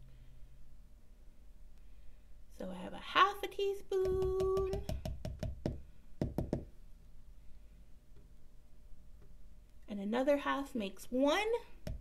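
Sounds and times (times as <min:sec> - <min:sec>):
spoon knocking on plastic cup: 0:04.0 - 0:06.7.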